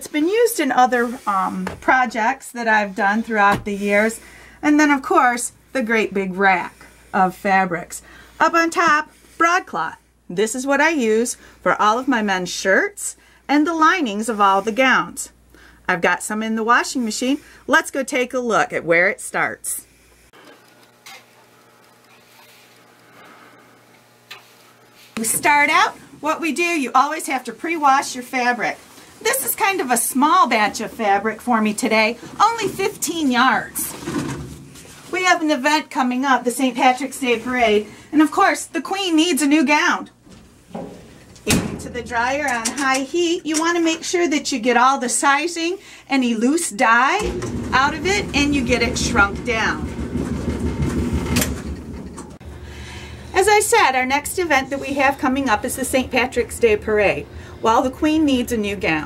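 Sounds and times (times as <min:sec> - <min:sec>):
low steady hum: 0:00.0 - 0:59.0
clothes dryer tumbling: 0:25.2 - 0:45.3, 0:46.6 - 0:59.0
steady hum: 0:45.8 - 0:59.0.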